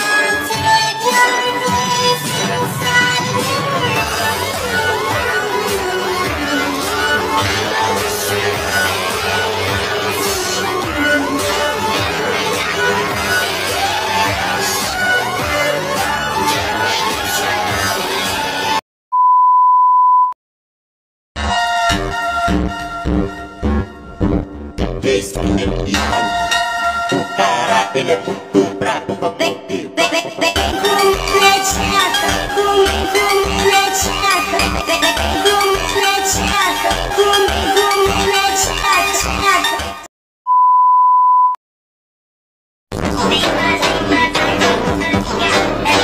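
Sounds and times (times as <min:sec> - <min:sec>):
music: 0:00.0 - 0:18.8, 0:21.4 - 0:40.1, 0:42.9 - 0:46.0
steady electronic beep: 0:19.1 - 0:20.4, 0:40.5 - 0:41.6.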